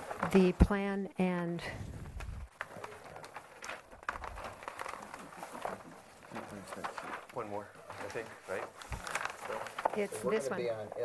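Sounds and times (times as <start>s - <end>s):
handling clicks and rustles: 2.1s - 10.5s.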